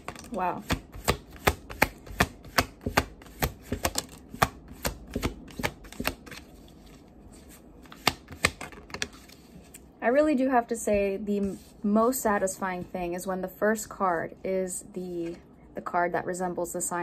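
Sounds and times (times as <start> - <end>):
cards shuffling in sharp taps: 0.0 - 9.5.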